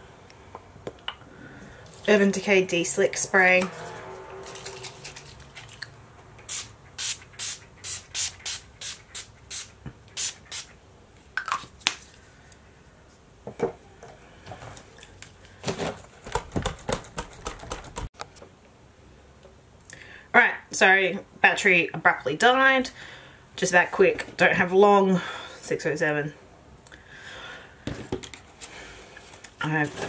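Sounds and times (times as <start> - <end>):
spray bottle spritzes: 6.5 - 10.7.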